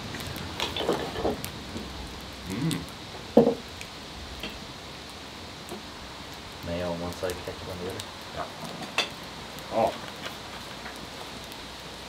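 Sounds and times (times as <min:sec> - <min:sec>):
outdoor hiss: 0:00.0 - 0:12.0.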